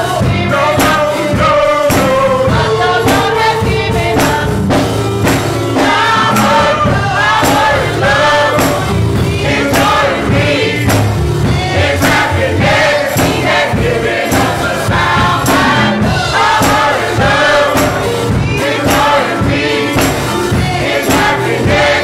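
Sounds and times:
gospel choir singing: 0.0 - 22.0
steady beat of sharp strokes: 0.0 - 22.0.

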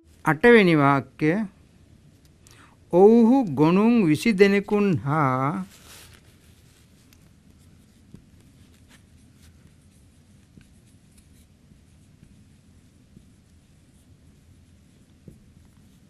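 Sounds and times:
marker scratching on whiteboard: 7.5 - 16.0
marker tapping on whiteboard: 15.1 - 15.8.

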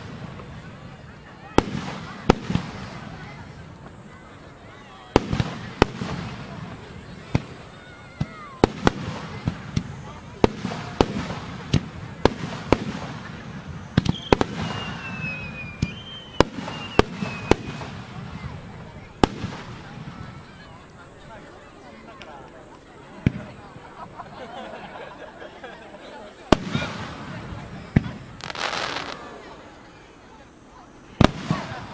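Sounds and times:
fireworks bursting: 0.0 - 4.5, 5.1 - 21.2, 22.6 - 23.9, 26.4 - 31.9.

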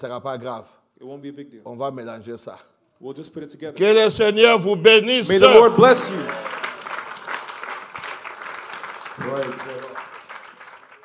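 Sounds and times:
crowd clapping: 5.3 - 11.0.

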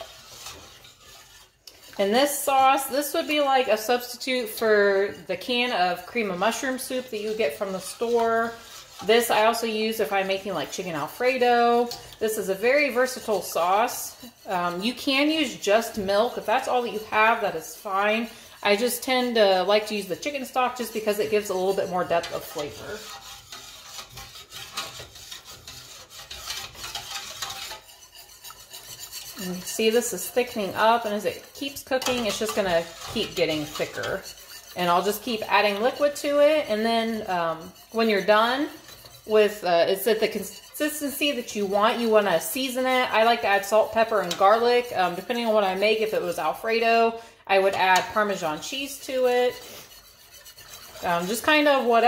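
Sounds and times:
whisk stirring sauce in a saucepan: 0.0 - 52.0.

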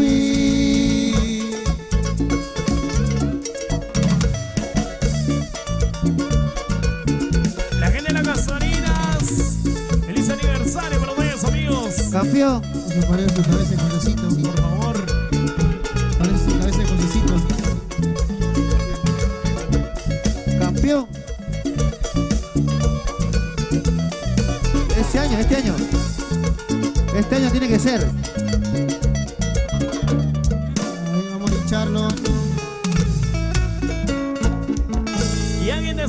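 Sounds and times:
bass guitar: 0.0 - 36.0
drums: 0.0 - 36.0
guitar melody: 0.0 - 36.0
percussion hits: 0.0 - 36.0.

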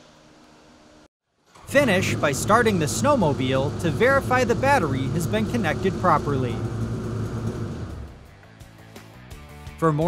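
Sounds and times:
snowmobile engine idling: 1.7 - 8.2.

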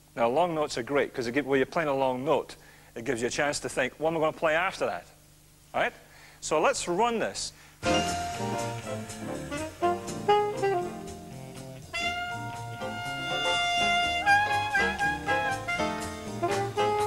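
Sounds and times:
alto saxophone jazz solo: 7.8 - 17.0
jazz rhythm section: 7.8 - 17.0.

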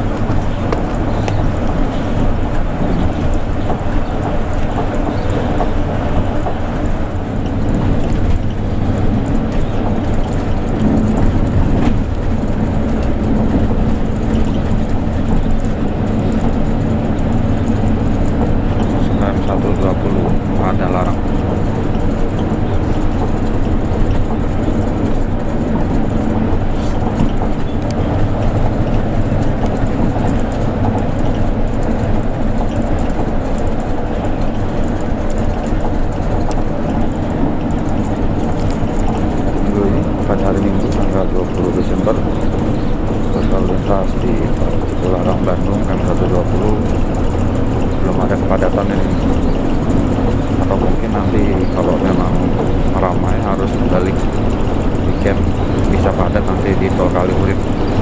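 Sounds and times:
bus engine and tyres droning: 0.0 - 58.0.

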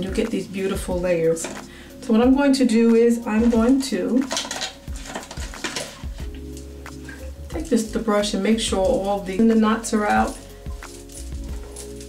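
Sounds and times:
faint background music: 0.0 - 12.0
hairbrush brushing hair: 3.2 - 12.0
hand rustling through hair: 3.2 - 12.0.

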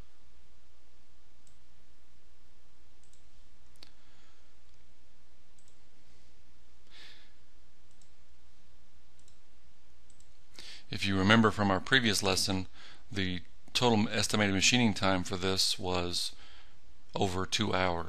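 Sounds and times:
steady low hum: 0.0 - 18.0
computer mouse clicks: 3.0 - 4.0, 5.6 - 5.8, 7.9 - 8.2, 9.2 - 9.4, 10.1 - 10.4.

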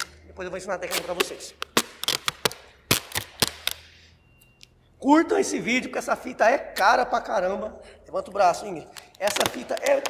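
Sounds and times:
duct tape crackling off roll: 0.8 - 3.8.

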